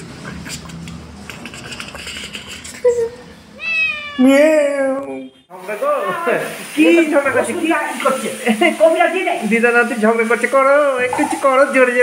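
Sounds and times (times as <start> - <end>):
cat meowing: 3.6 - 4.6.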